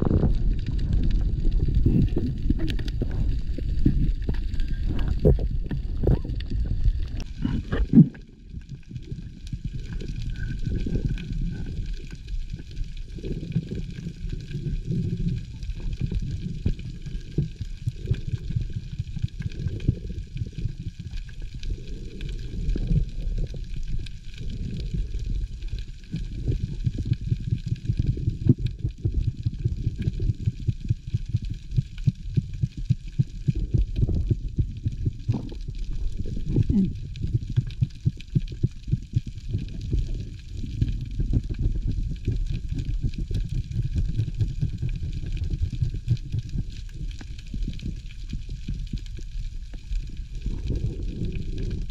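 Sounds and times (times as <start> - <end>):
crackle of clicks: 0.0 - 51.9
muffled underwater rumble: 0.0 - 51.9.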